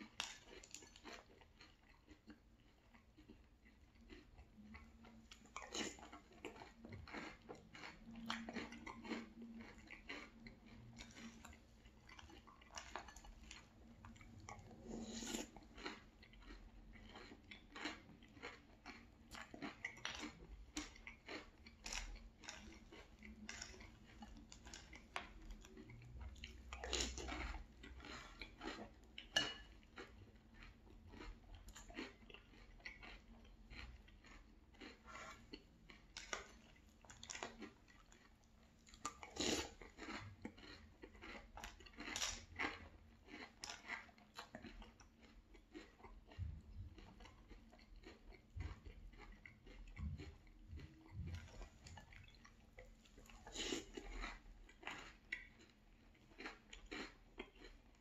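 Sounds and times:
chewing cereal crunches: 0:00.0 - 0:58.0.

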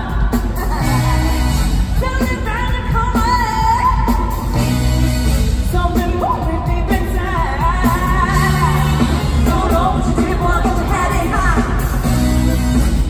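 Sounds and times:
heavy bass: 0:00.0 - 0:13.0
live pop music: 0:00.0 - 0:13.0
female vocal singing: 0:05.7 - 0:11.8.

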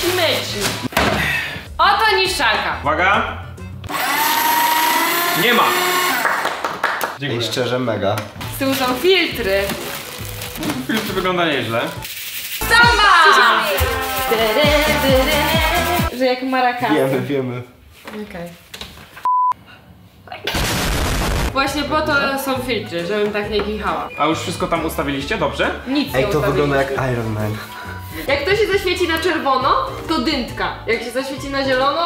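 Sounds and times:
paper shredder cutting paper: 0:03.9 - 0:06.3
censor bleep: 0:19.2 - 0:19.6.

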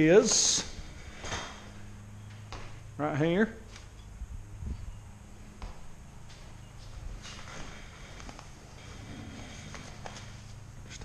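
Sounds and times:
steady low hum: 0:00.0 - 0:11.0
footsteps on concrete floor: 0:00.3 - 0:02.9, 0:04.7 - 0:11.0.

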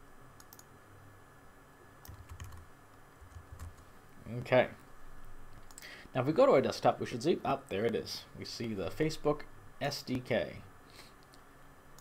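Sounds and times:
keyboard keystrokes: 0:02.0 - 0:02.6.

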